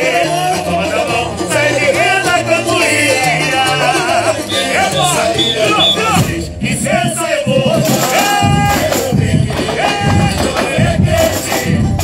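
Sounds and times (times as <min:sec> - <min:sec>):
crowd voices: 0:00.0 - 0:12.0
man singing into a microphone: 0:00.0 - 0:12.0
samba percussion: 0:00.0 - 0:12.0.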